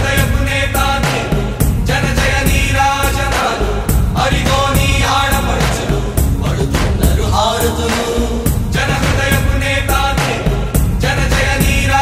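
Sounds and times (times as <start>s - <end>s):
music with strong bass beat: 0.0s - 12.0s
person singing: 0.0s - 12.0s.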